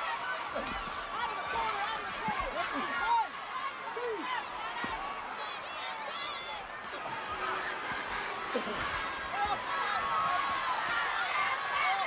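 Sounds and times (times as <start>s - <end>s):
stadium crowd shouting: 0.0s - 12.0s.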